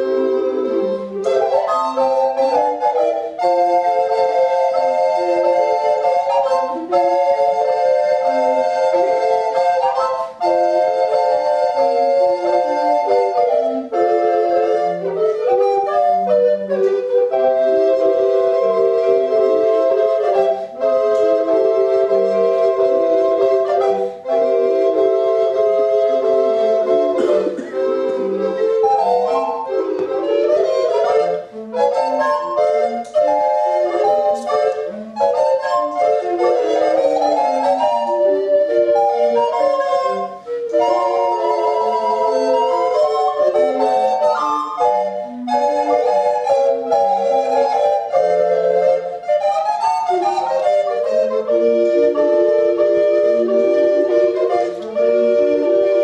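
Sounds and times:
recorder ensemble playing: 0.0s - 56.0s.

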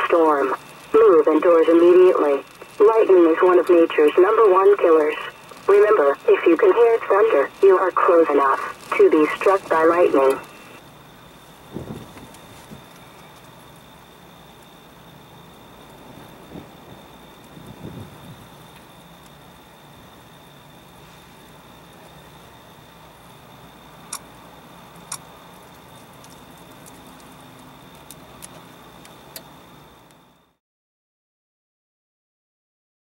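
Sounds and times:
faint background noise: 0.0s - 30.6s
high whine: 0.0s - 30.6s
sharp ticks: 24.1s - 24.3s, 24.9s - 25.3s.

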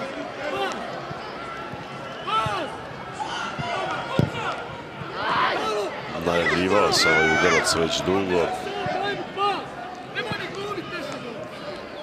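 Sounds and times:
players and crowd shouting: 0.0s - 12.0s
ball kick: 3.5s - 5.1s.

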